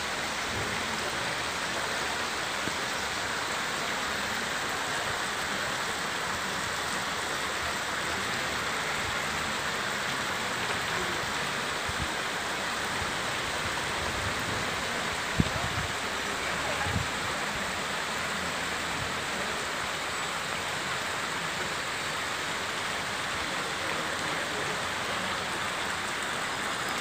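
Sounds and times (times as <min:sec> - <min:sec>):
heavy rain on street: 0:00.0 - 0:27.0
water flowing over road: 0:00.0 - 0:27.0.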